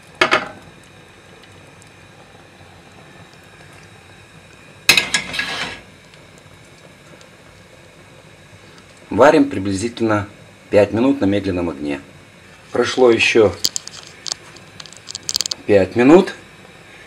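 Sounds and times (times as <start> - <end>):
broth boiling in a pot: 0.0 - 17.0
sharp clatter: 13.6 - 15.6.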